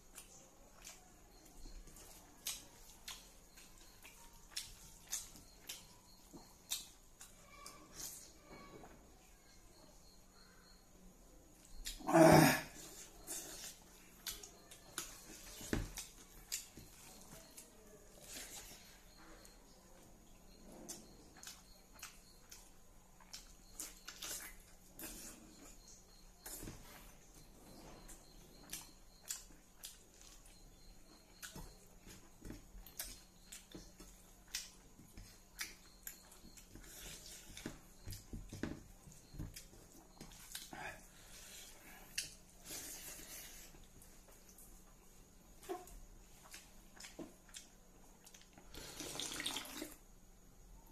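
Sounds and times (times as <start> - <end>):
person chewing and smacking: 0.0 - 8.3, 12.8 - 48.9.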